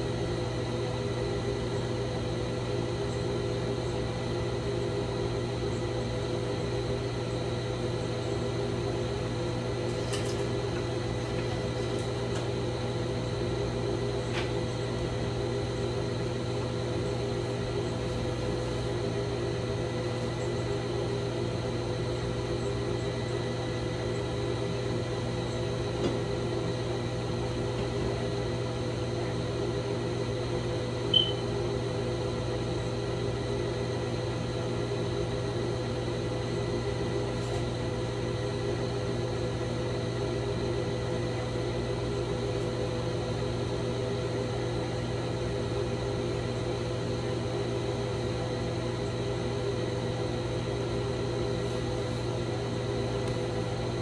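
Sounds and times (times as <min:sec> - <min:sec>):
steady machine hum: 0:00.0 - 0:54.0.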